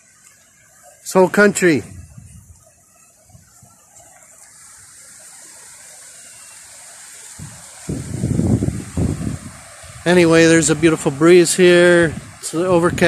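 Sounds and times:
surf washing on shore: 0:00.0 - 0:13.0
wind buffeting microphone: 0:01.8 - 0:04.0, 0:07.3 - 0:13.0.

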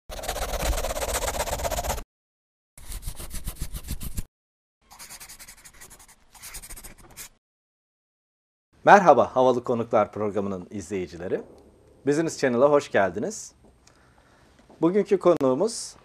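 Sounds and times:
marker pen scribbling: 0:00.1 - 0:02.0, 0:02.8 - 0:04.3, 0:04.9 - 0:07.4.

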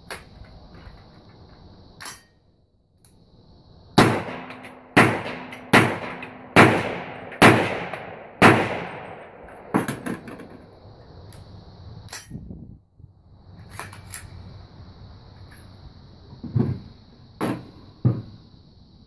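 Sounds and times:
metal clicks of rifle handling: 0:02.0 - 0:02.3, 0:12.1 - 0:12.4, 0:13.7 - 0:14.3
rifle shots with echo: 0:04.0 - 0:10.3.

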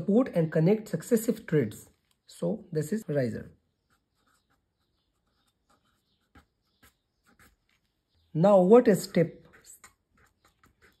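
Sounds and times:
marker writing on paper: 0:03.7 - 0:11.0.

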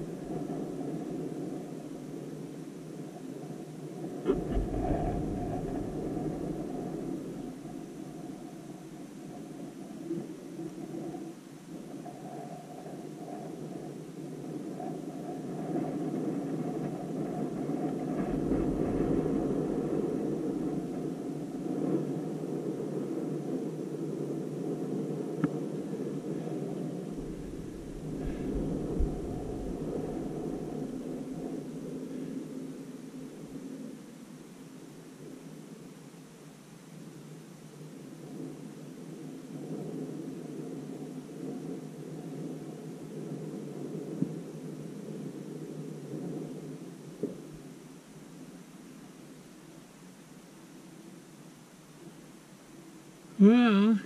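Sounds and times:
wind buffeting microphone: 0:00.0 - 0:33.9.

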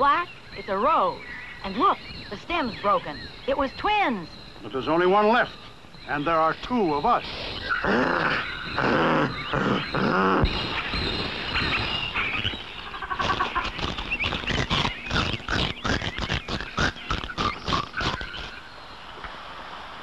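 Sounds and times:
animal-like vocal noises: 0:07.2 - 0:18.6
people biting and chewing: 0:07.6 - 0:18.6
crunching bites: 0:13.2 - 0:18.5.

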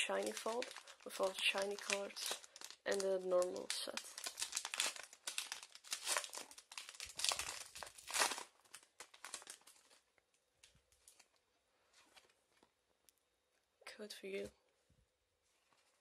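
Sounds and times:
foil wrapper crinkling and tearing: 0:00.0 - 0:11.3
faint rustles of cards: 0:00.0 - 0:13.0, 0:14.4 - 0:16.0.

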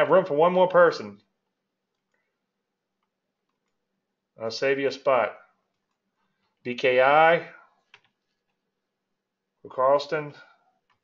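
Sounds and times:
person speaking: 0:00.0 - 0:02.2, 0:03.5 - 0:08.7, 0:09.4 - 0:11.0.

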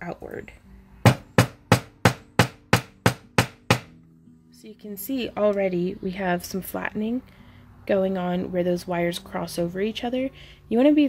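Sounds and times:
hammer striking wire on anvil: 0:01.1 - 0:03.9.

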